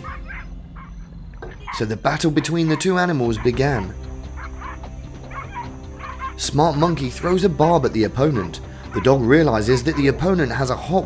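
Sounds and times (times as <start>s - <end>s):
dog barking and yipping: 0.0s - 6.4s, 8.9s - 10.3s
background music: 0.0s - 11.0s.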